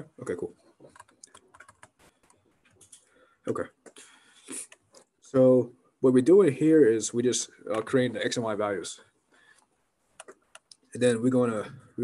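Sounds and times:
laptop keyboard tapping: 0:00.8 - 0:03.0.

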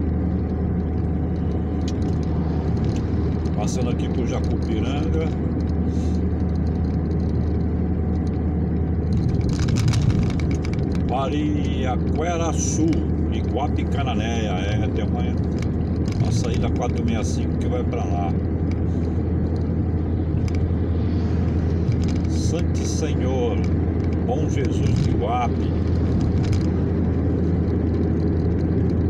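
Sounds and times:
car engine and tyre rumble: 0:00.0 - 0:29.0.

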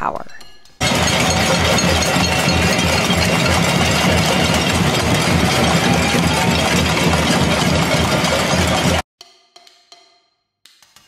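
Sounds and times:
crowd banging pots and pans: 0:00.8 - 0:09.0.

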